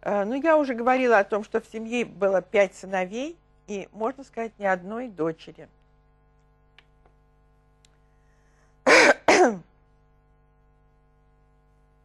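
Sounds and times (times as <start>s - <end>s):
woman clearing her throat: 8.9s - 9.7s.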